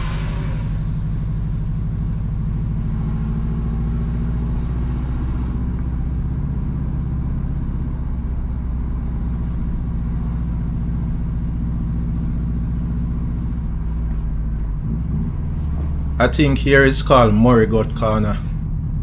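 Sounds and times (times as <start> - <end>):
road hiss: 0.0 - 1.9
car engine drone: 0.0 - 19.0.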